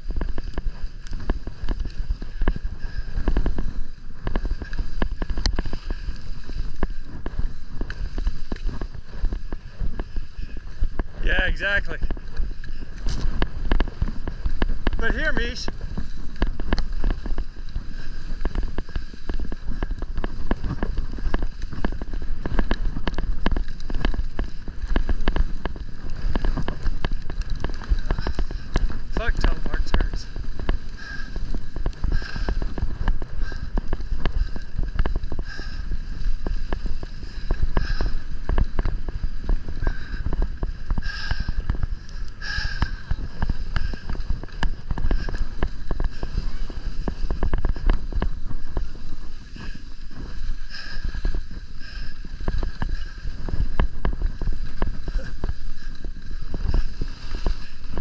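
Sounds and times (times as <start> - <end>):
ski edges scraping snow: 0.0 - 58.0
wind on microphone: 0.0 - 58.0.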